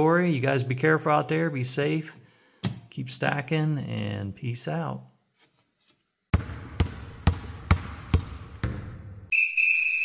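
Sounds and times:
basketball bouncing: 6.3 - 9.3.

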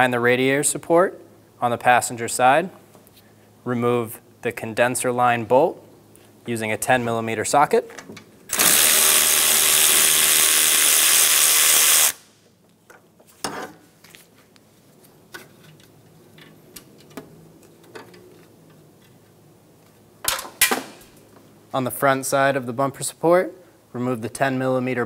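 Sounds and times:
power ratchet whirring: 8.5 - 12.3.

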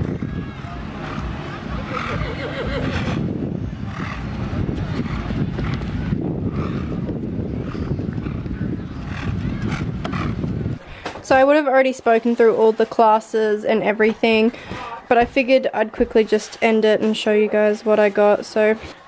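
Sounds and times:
wind on microphone: 0.0 - 11.6.

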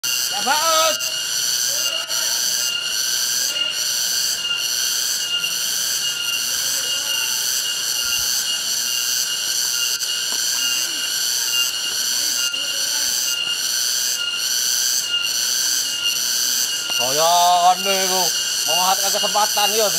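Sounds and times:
cicadas buzzing: 0.0 - 19.9.

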